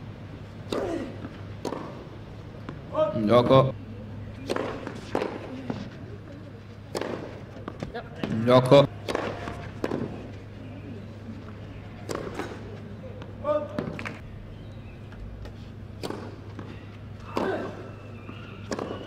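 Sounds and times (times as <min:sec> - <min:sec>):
tennis racket hitting ball: 0:00.7 - 0:02.1, 0:04.4 - 0:05.8, 0:06.9 - 0:10.3, 0:12.0 - 0:12.7, 0:16.0 - 0:19.0.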